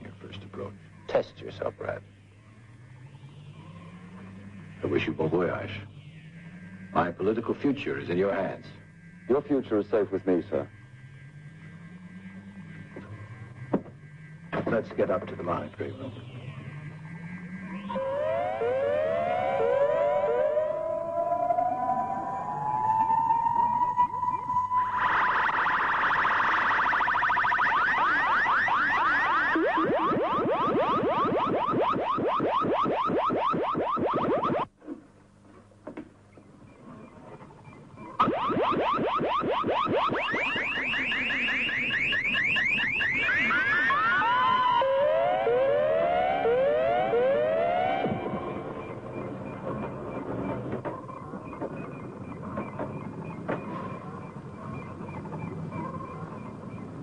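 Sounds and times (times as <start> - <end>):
synthesized warbling chirps: 15.4 - 34.7, 38.1 - 50.0.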